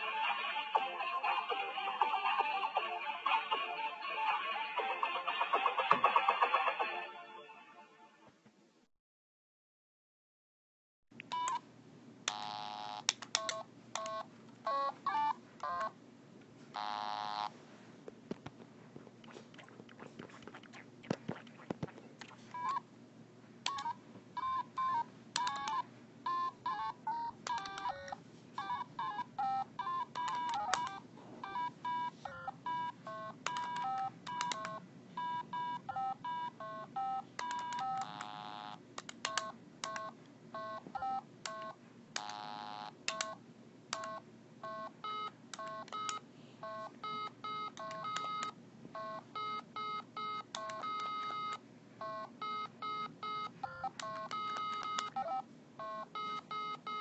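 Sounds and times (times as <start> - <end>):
electronic toy beeping: 23.7 - 43.4, 44.0 - 57.0.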